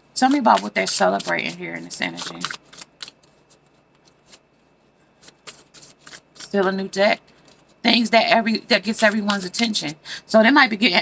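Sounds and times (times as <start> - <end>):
cards being shuffled: 0.2 - 7.8.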